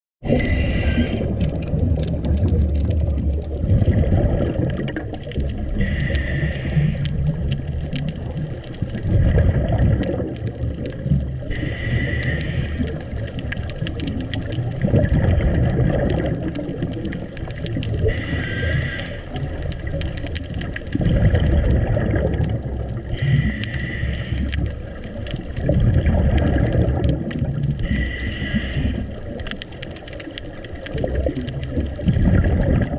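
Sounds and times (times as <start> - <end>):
gurgle of exhaled bubbles: 0.2 - 32.9
regulator inhale hiss: 0.3 - 1.5, 5.7 - 7.3, 11.4 - 13.2, 18.0 - 19.5, 23.1 - 24.9, 27.8 - 29.4.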